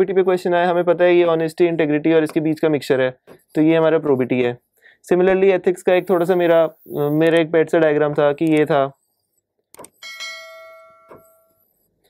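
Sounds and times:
bell-like notification chime: 10.0s - 11.6s.

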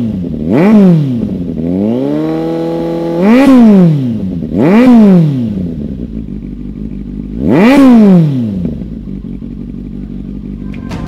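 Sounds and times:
motorcycle engine idling: 0.0s - 11.0s
music with drum hits: 10.7s - 11.0s.

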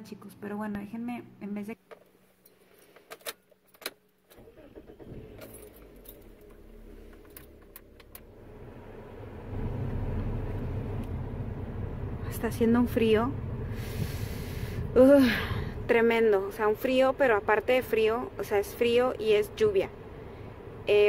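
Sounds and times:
car engine running: 4.4s - 21.0s
car keys jangling: 5.2s - 8.2s.

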